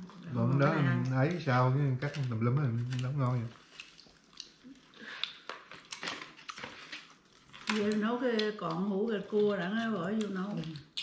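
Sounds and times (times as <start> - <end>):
chewing: 2.0 - 8.5, 9.8 - 11.0
crab shell cracking: 2.2 - 8.8, 10.2 - 11.0.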